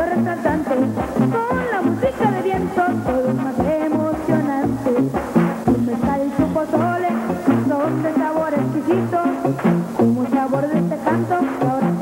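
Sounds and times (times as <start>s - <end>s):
band with brass and drums: 0.0s - 12.0s
bass line: 0.0s - 12.0s.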